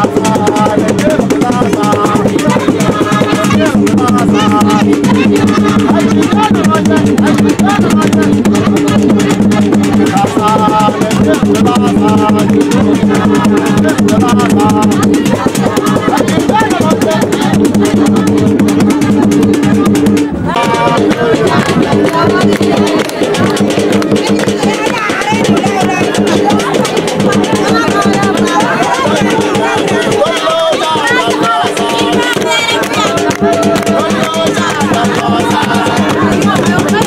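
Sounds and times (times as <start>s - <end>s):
drums: 0.0s - 37.0s
voices singing: 0.0s - 37.0s.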